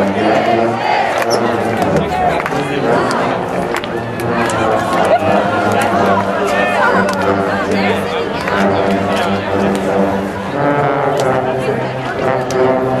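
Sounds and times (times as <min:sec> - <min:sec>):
marching band brass chords: 0:00.0 - 0:13.0
people talking: 0:00.0 - 0:13.0.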